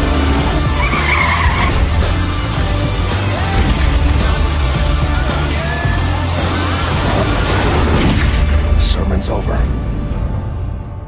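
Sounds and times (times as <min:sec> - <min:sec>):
car tyres squealing: 0:00.0 - 0:02.5.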